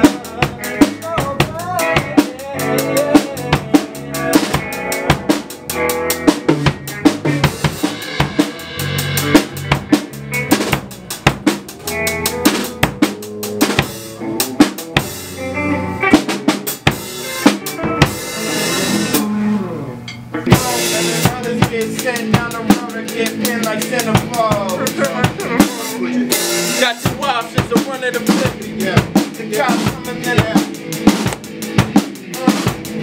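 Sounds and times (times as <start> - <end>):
band playing live: 0.0 - 33.0
drum kit: 0.0 - 33.0.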